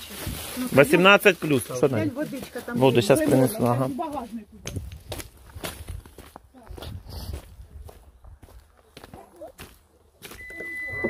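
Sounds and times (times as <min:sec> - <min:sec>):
footsteps on gravel and leaves: 0:00.0 - 0:10.8
electronic beep: 0:10.3 - 0:11.0.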